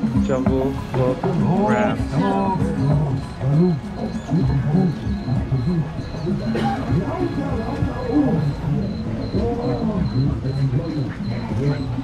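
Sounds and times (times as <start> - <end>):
music with voices: 0.0 - 12.0
repeating high chirp: 1.6 - 12.0.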